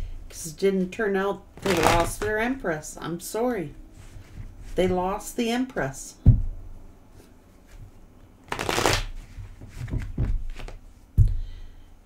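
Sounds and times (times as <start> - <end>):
cards being shuffled: 1.6 - 2.4, 8.4 - 10.8.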